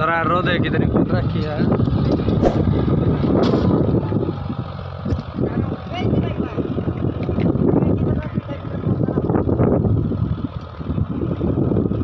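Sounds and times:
tractor diesel engine under load: 0.0 - 12.0.

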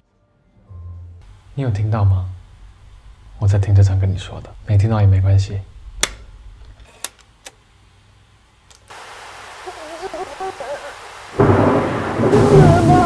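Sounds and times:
hissing noise: 8.9 - 13.0
person sobbing: 9.7 - 11.0, 12.2 - 13.0
rough rumbling roar: 11.4 - 13.0.

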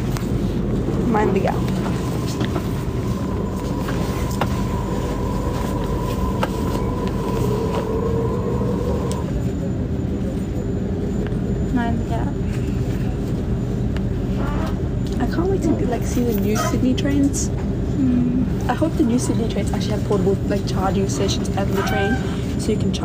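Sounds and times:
thin steady whine: 0.0 - 23.0
train low rumble and hum: 0.0 - 23.0.

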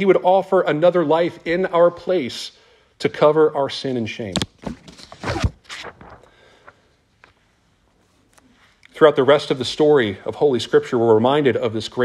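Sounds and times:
brief rustling: 4.4 - 8.8.

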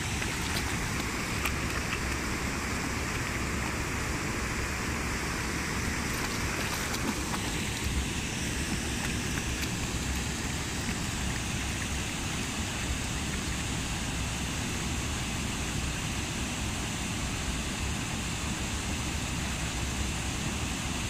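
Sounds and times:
dog splashing in water: 0.0 - 14.1
shallow river over stones: 0.0 - 21.0.

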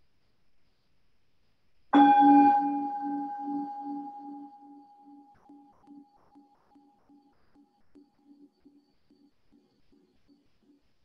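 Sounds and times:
meditation bell ringing: 2.0 - 5.3.

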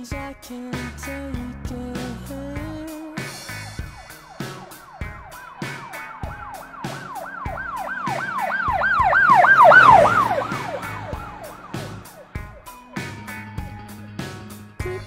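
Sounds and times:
music with a steady beat: 0.0 - 15.0
emergency siren yelping: 3.5 - 13.7.

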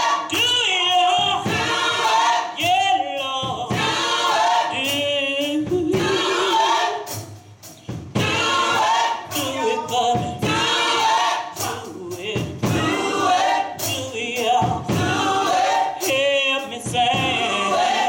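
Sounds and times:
gospel choir singing: 0.0 - 18.0.

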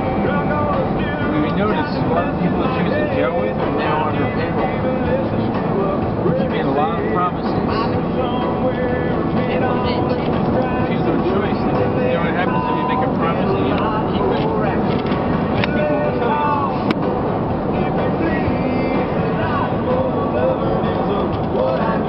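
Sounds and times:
country song on car radio: 0.0 - 22.0
road and engine noise: 0.0 - 22.0.

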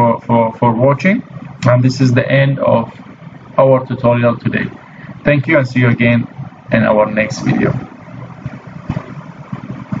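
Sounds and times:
microphone hiss: 0.0 - 10.0
soft low thumps: 8.1 - 10.0.

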